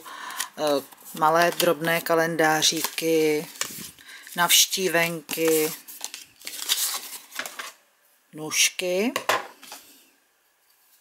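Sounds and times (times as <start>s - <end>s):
paper cards rustling and sliding: 0.2s - 7.8s.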